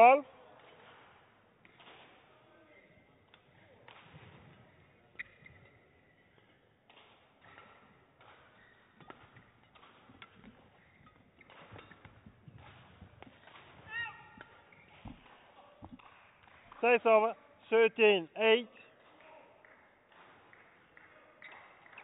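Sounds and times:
footwork on court: 0.6s - 17.0s
racket striking shuttlecock: 6.9s - 16.6s.

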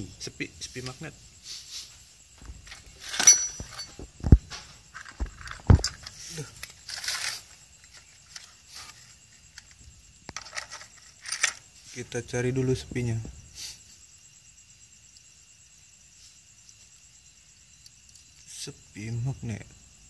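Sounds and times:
rustling and scraping: 0.6s - 14.2s
metallic clink: 2.6s - 5.1s.

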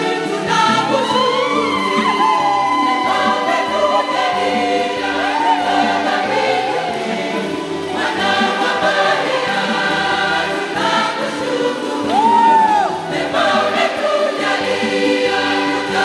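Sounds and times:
choir singing a hymn: 0.0s - 16.0s
instrumental accompaniment: 0.0s - 16.0s.

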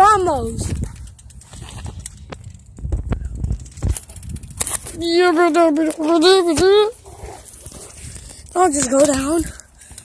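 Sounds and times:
boy's wavering wordless voice: 0.0s - 0.7s, 4.8s - 7.4s, 8.4s - 9.8s
faint outdoor background: 0.0s - 10.0s.

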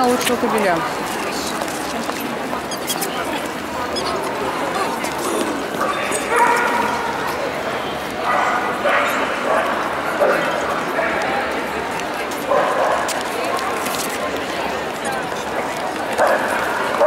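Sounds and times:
crowd chatter: 0.0s - 17.0s
dogs barking and yipping: 5.7s - 7.5s, 8.2s - 11.2s, 12.5s - 13.3s, 16.2s - 17.0s.

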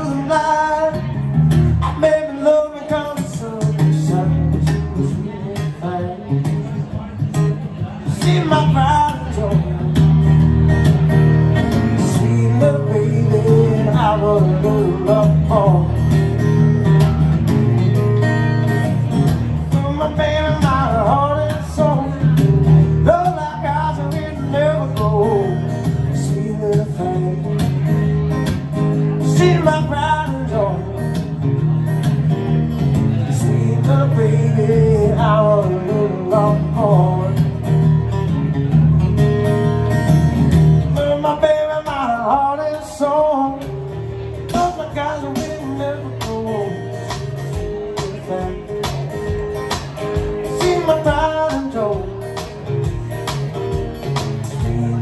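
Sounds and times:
man singing: 0.0s - 10.5s, 11.6s - 31.5s, 32.8s - 38.1s, 40.8s - 55.0s
acoustic guitar: 0.0s - 55.0s.

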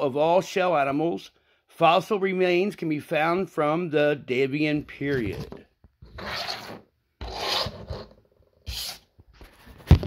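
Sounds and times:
scraping against table mat: 5.2s - 9.1s.

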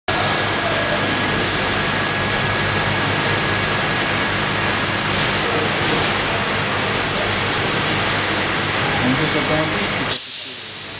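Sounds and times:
machinery and ventilation hiss: 0.1s - 10.9s.

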